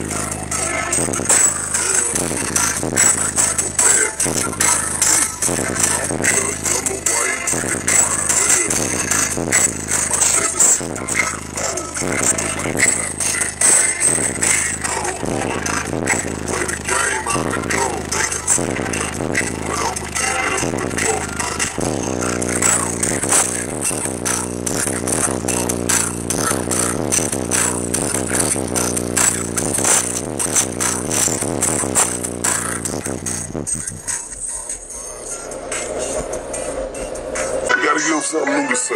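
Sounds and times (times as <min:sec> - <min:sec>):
bass-heavy song on car stereo: 0:00.0 - 0:38.9.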